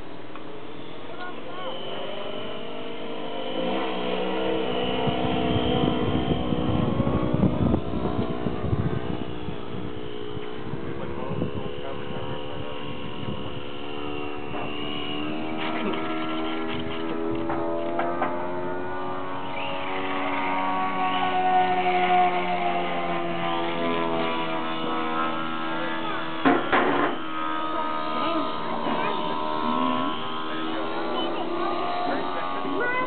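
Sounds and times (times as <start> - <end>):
model airplane motor whining: 0.0 - 33.0.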